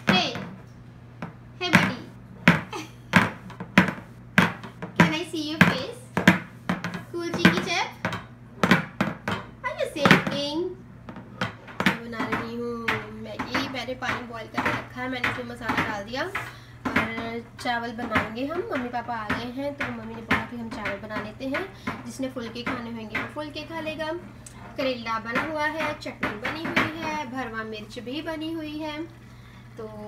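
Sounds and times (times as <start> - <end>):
steady low hum: 0.0 - 30.0
knocks on a hard surface: 1.2 - 10.5.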